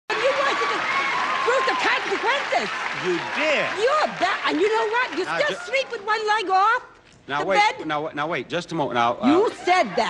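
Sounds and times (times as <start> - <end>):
audience applauding: 0.1 - 6.4.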